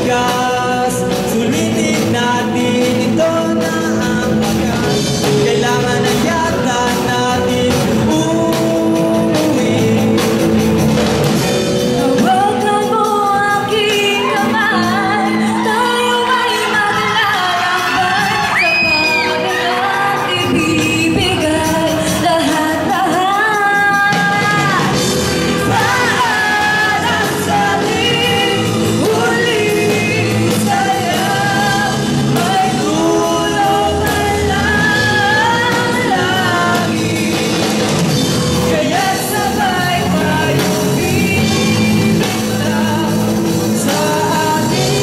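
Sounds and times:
live rock band: 0.0s - 45.0s
woman singing: 11.8s - 38.0s, 38.6s - 45.0s.

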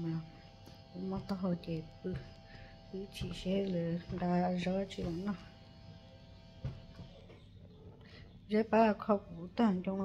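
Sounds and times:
woman speaking: 0.0s - 5.6s, 8.4s - 10.0s.

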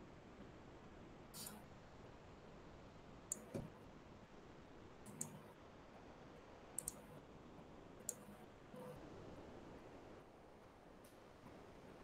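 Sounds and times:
faint computer mouse clicks: 3.3s - 3.7s, 5.1s - 5.4s, 6.8s - 7.1s, 8.0s - 8.3s.

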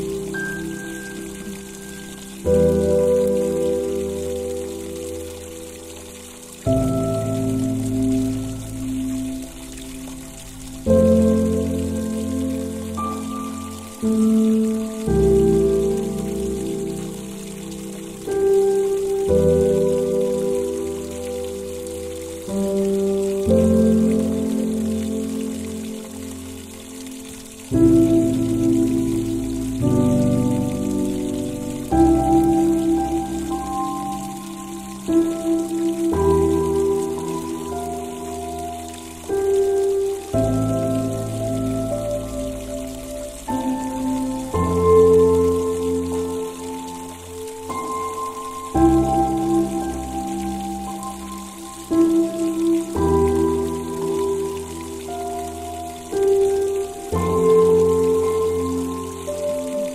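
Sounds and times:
slow calm piano music: 0.0s - 59.9s
soft hiss of rain: 0.0s - 59.9s.

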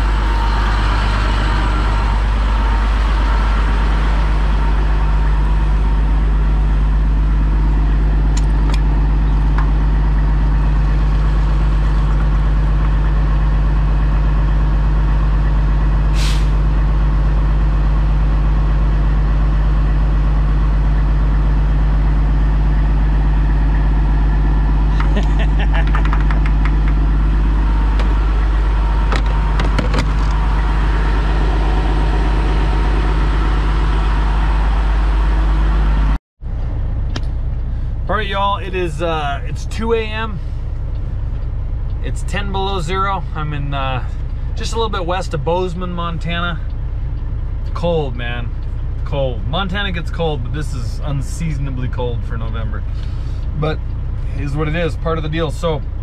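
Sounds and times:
diesel truck engine idling: 0.0s - 56.0s.

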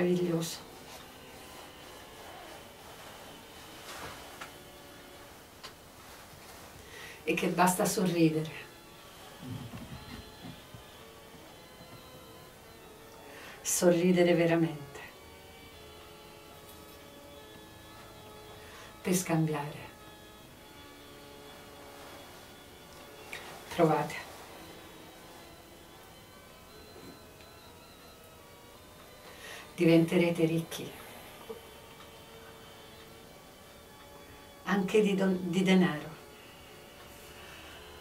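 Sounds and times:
low room hiss: 0.0s - 38.0s.

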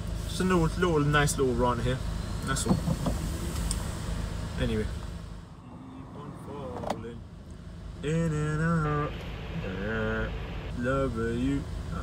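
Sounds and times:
car cabin engine hum: 0.0s - 12.0s.

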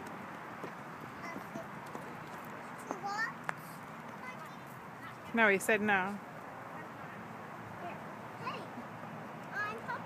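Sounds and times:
faint outdoor background noise: 0.0s - 10.0s.

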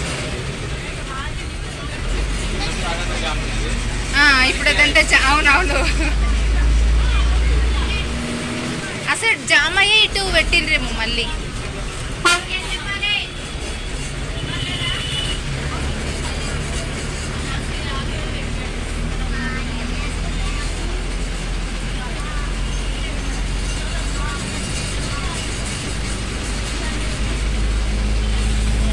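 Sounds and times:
bus engine humming: 0.0s - 28.9s.

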